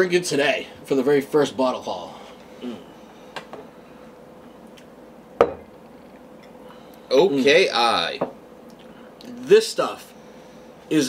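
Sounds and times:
glass bottle knocking on wood: 5.4s - 5.7s.

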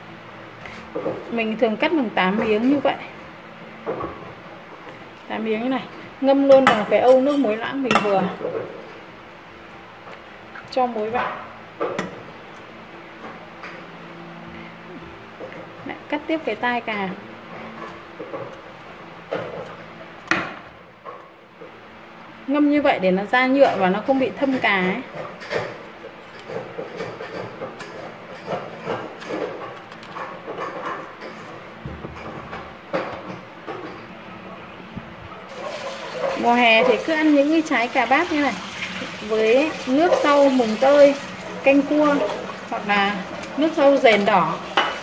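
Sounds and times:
knife scraping on cutting board: 25.3s - 31.6s.

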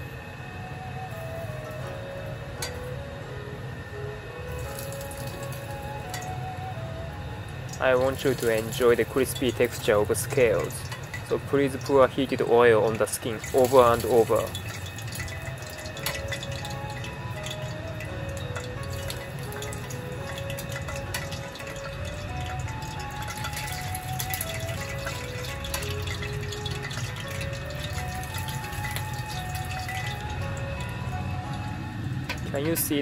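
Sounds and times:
hot oil crackling: 0.8s - 33.0s
background music with stepping melody: 14.0s - 33.0s.

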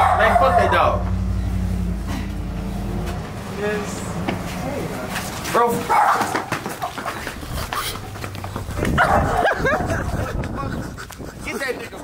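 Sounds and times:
low motor hum: 0.0s - 5.2s.

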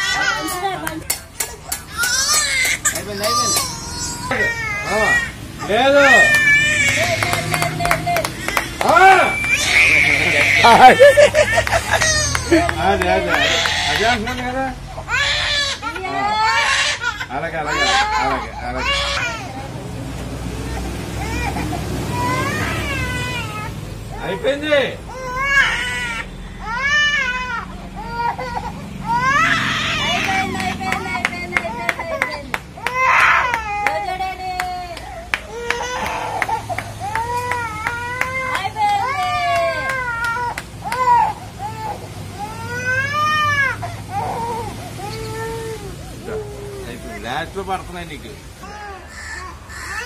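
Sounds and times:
baby crying: 0.0s - 19.7s, 20.6s - 47.3s, 48.6s - 50.0s.

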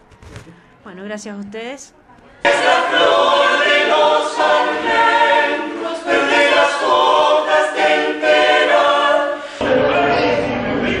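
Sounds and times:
vocal ensemble singing a cappella: 2.4s - 11.0s.

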